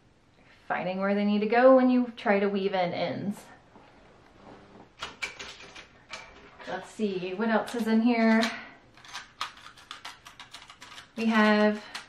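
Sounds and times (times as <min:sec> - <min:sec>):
small objects clicking and rattling: 0:07.6 - 0:12.0.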